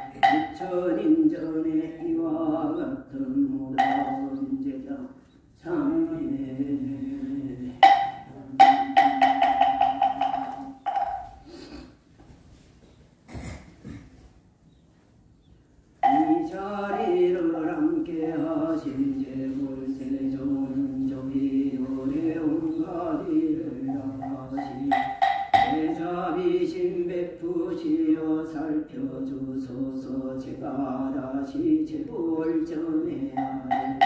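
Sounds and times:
wooden temple block strikes: 0.0s - 0.7s, 3.8s - 4.4s, 7.8s - 11.4s, 16.0s - 17.2s, 23.2s - 26.0s, 33.4s - 34.0s
low steady chanting: 0.0s - 11.2s, 16.0s - 34.0s.

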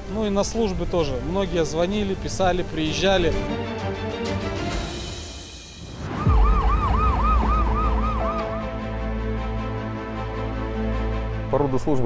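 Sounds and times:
emergency vehicle siren wailing: 6.0s - 9.0s.

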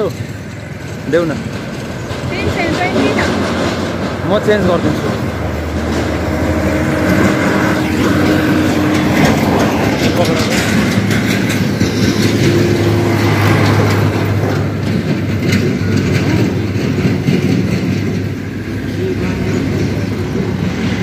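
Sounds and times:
constant hum: 0.0s - 21.0s
loud low rumble: 0.6s - 21.0s.

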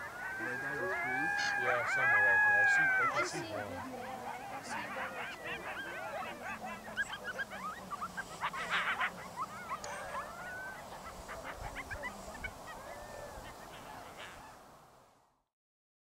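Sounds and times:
coyotes yipping and howling: 0.0s - 14.7s.

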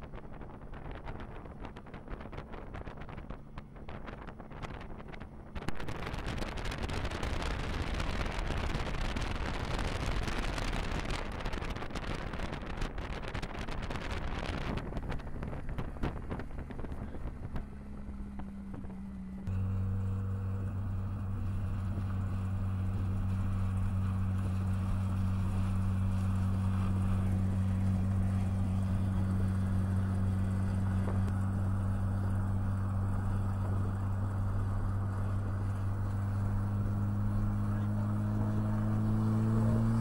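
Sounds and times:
vehicle engine running: 0.0s - 40.0s
wind noise on microphone: 0.0s - 40.0s.

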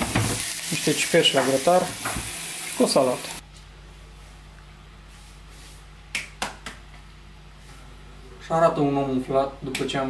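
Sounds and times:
low electrical hum: 0.0s - 10.0s
hand patting bare stomach: 6.1s - 7.0s.

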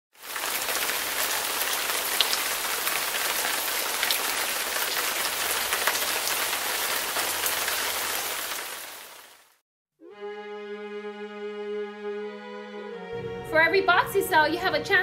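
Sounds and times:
steady rain falling: 0.1s - 9.6s.

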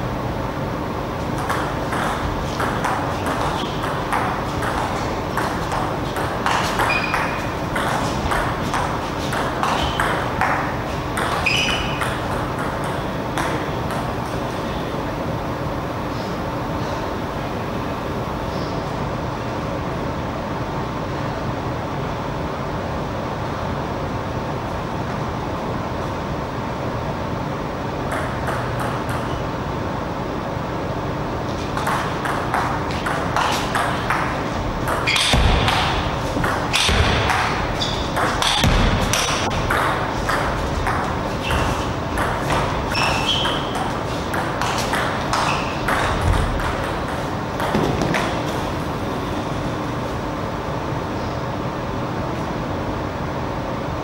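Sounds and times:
ball bouncing: 1.3s - 14.2s, 28.1s - 29.4s, 31.5s - 48.7s
shoe squeaks: 2.5s - 3.9s, 6.1s - 8.4s, 9.1s - 10.2s, 11.1s - 12.2s, 34.9s - 46.4s.

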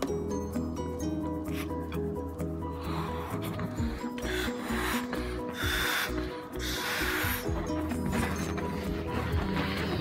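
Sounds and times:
background music: 0.0s - 10.0s
breathy puffs into balloon: 2.6s - 10.0s.

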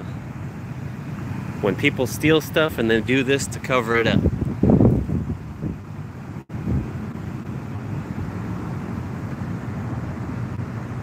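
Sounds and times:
wind noise on microphone: 4.0s - 11.0s.

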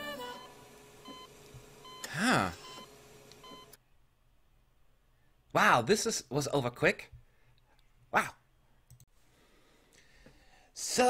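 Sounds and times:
person singing: 0.0s - 0.7s
patient monitor beeping: 0.3s - 3.8s.

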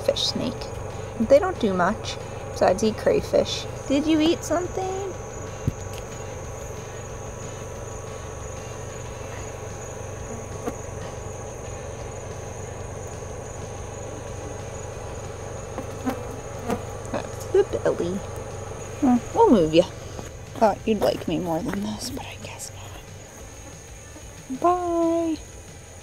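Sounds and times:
insects trilling: 0.0s - 26.0s
low buzzing hum: 0.0s - 26.0s.

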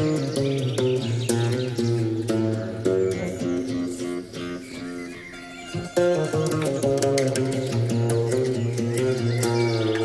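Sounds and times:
plucked string music: 0.0s - 10.0s.

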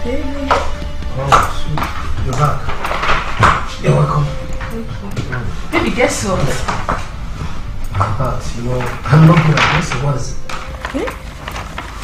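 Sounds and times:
high heels clicking on tiles: 0.3s - 8.2s.

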